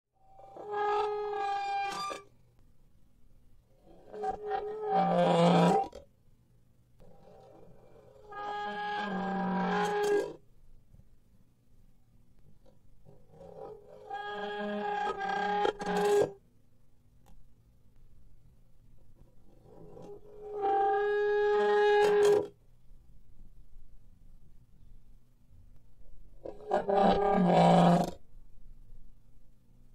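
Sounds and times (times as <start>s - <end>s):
scary creature cries: 26.6s - 28.2s.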